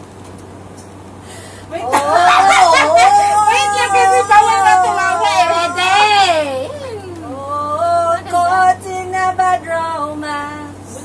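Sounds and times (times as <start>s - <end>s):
woman singing high wail: 1.7s - 7.2s.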